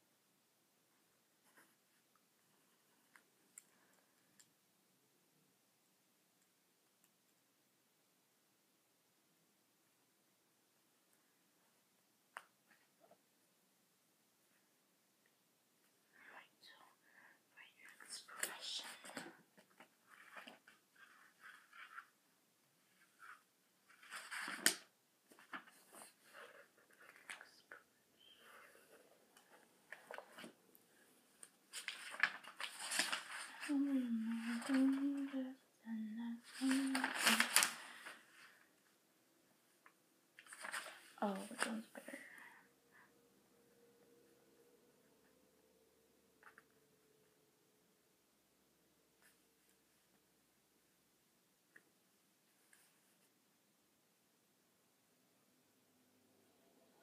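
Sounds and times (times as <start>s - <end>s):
girl whispering: 16.1s - 19.5s, 33.6s - 38.1s, 41.1s - 42.6s
paper rustling: 18.4s - 22.2s, 22.9s - 30.6s, 31.3s - 35.4s, 36.4s - 38.7s, 40.4s - 42.1s
girl humming: 33.7s - 37.6s.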